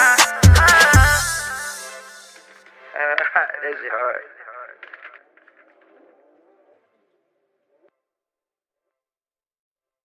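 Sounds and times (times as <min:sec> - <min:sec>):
thin radio-like voice: 0:02.9 - 0:06.8.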